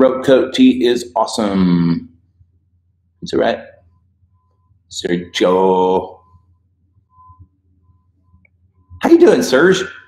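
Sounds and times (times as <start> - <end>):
man speaking: 0.0 - 2.1, 3.2 - 3.8, 4.9 - 6.2, 9.0 - 10.0
low steady hum: 0.0 - 10.0.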